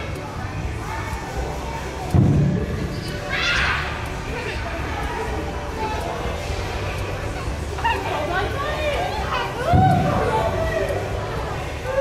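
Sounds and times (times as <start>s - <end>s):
thump: 2.2s - 2.6s.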